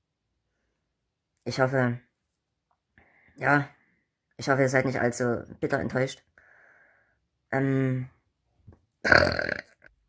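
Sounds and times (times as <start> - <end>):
man burping: 9.0 - 9.9.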